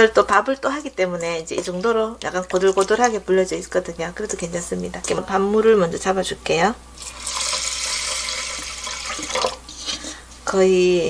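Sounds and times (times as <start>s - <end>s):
water pouring into a pot: 7.0s - 9.6s.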